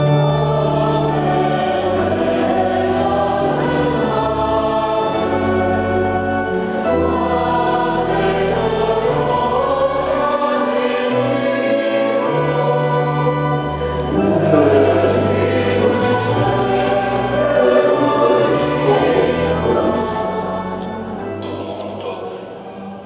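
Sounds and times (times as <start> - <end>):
organ keyboard bass notes: 0.0 - 22.3
mixed choir singing: 0.0 - 23.0.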